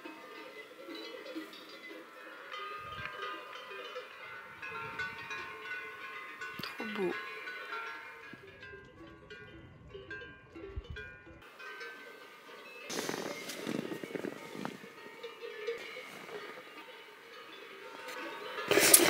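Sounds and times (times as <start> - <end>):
cowbells clanking: 0.0 - 19.0
rustling noise: 11.7 - 19.0.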